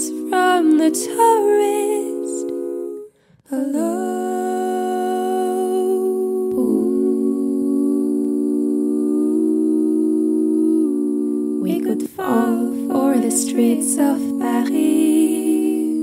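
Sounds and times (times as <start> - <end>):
female voices humming a chord: 0.0 - 16.0.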